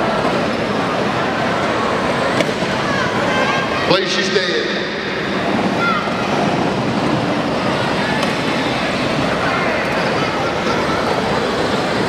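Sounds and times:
crowd voices: 0.0 - 12.0.

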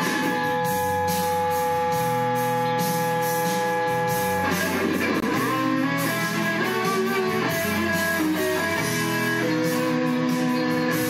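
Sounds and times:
electric guitar with harmony effect: 0.0 - 11.0.

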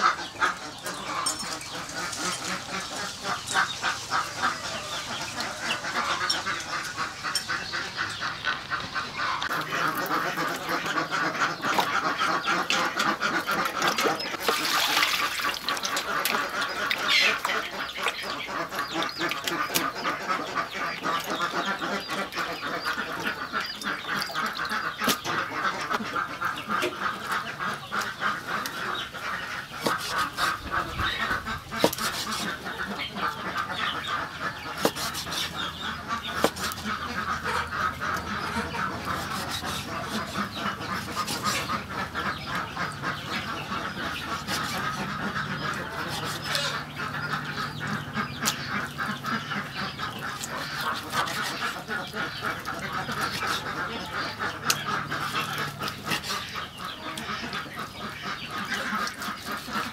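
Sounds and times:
flock of birds chattering: 0.0 - 59.9.

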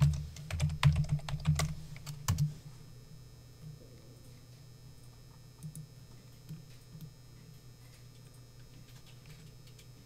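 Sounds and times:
computer keyboard typing: 0.0 - 2.5, 8.1 - 9.9.

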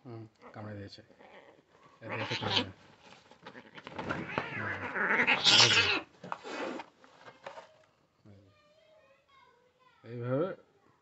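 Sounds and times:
kitten yowling: 2.0 - 2.7, 4.2 - 6.0.

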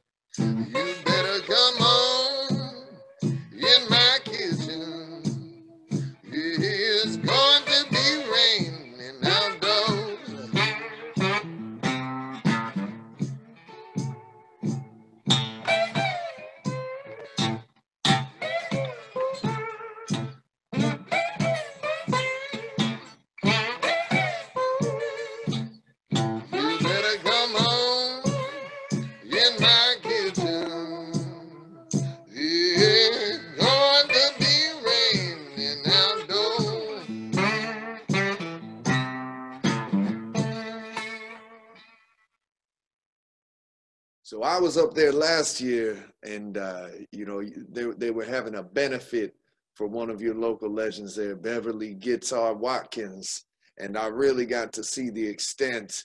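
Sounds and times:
acoustic blues guitar: 0.3 - 42.0, 44.5 - 55.8
man singing: 0.4 - 5.6, 6.2 - 10.7, 26.6 - 28.4, 29.2 - 37.1.

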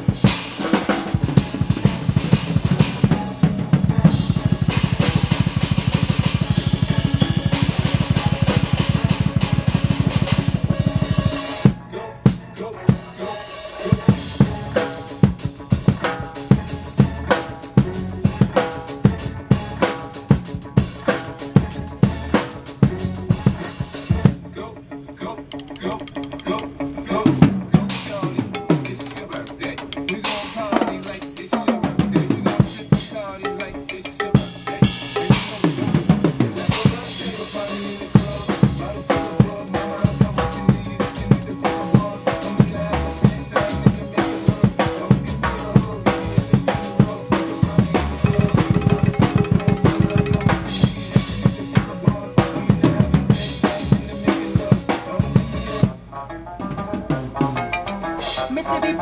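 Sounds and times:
drum kit solo: 0.0 - 24.5, 25.5 - 59.0
pitched backing music: 0.0 - 59.0.

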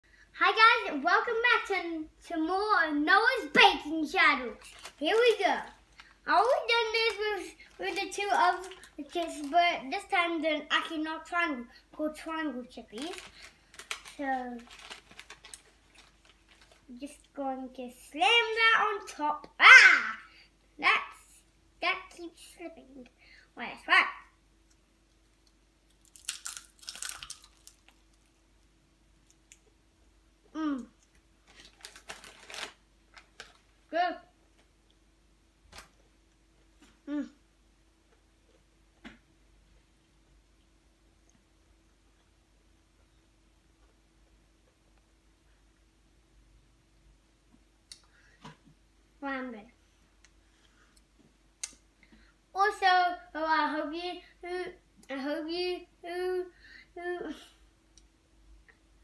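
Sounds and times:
child crunching potato chips: 4.5 - 9.6, 12.8 - 17.0, 25.4 - 28.4, 30.8 - 33.7.

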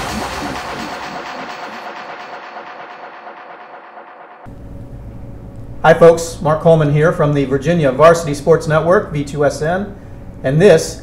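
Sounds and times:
electronic pulsing rattle texture: 0.0 - 4.6.

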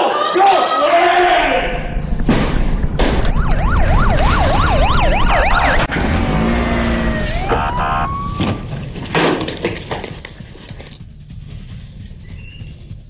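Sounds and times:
falling and rising siren tone: 1.4 - 8.7
steady low rumble: 1.4 - 9.0
police siren sweeping: 1.6 - 8.7.

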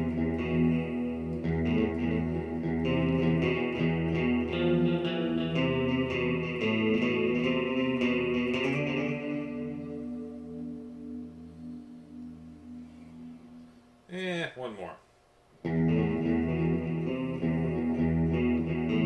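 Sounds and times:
electric guitar riff with delay: 0.0 - 14.1, 15.6 - 19.0.

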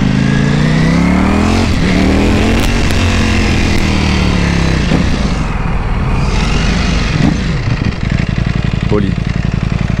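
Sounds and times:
motorcycle engine revving: 0.0 - 10.0
wind noise: 1.3 - 8.6.

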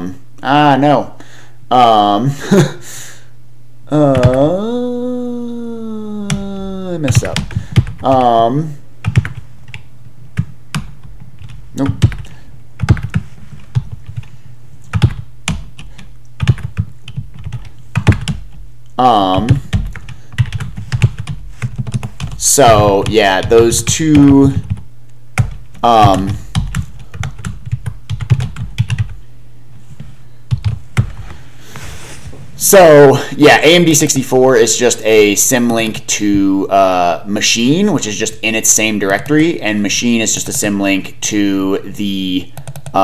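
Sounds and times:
steady low hum: 0.0 - 43.0
keyboard typing: 4.1 - 4.6, 9.0 - 18.6, 19.4 - 24.8, 25.4 - 29.2, 30.5 - 31.2, 42.6 - 43.0
keyboard keys clicking: 42.6 - 43.0.

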